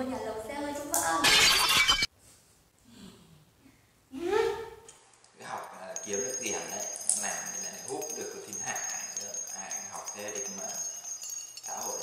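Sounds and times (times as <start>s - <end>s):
glass shattering: 1.2s - 2.1s, 5.7s - 12.0s.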